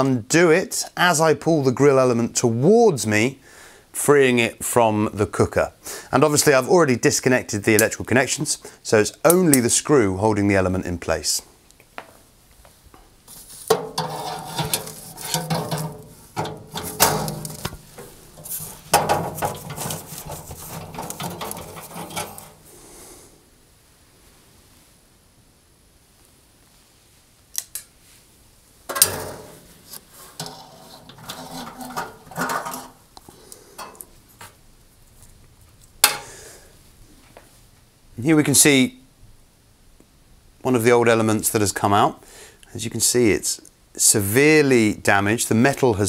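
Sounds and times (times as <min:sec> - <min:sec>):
metal clinking and scraping: 0:13.3 - 0:22.7, 0:28.9 - 0:33.1.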